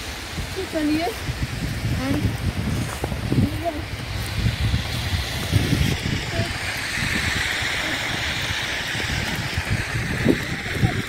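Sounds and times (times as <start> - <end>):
car tyres hissing on slush: 0.0 - 11.0
low rumbling on microphone: 0.0 - 11.0.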